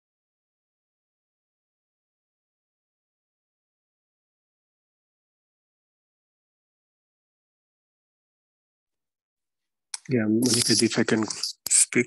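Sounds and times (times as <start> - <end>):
person speaking: 10.0 - 12.0.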